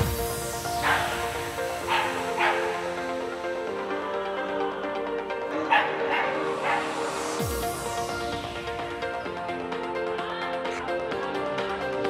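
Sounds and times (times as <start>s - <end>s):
background music with held notes: 0.0s - 12.0s
dog barking in sharp yaps: 1.9s - 2.8s.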